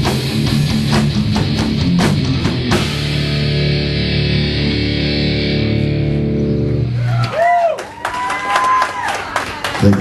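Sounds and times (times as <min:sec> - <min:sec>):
distorted electric guitar chord: 0:01.8 - 0:06.9.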